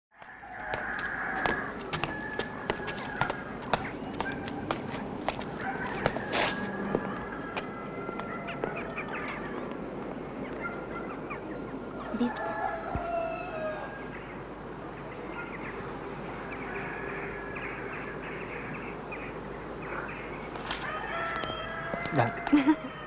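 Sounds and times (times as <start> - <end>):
rooster crowing: 0.2 - 9.5, 11.8 - 14.2, 16.6 - 18.0, 20.8 - 23.0
chickens clucking: 0.6 - 9.8.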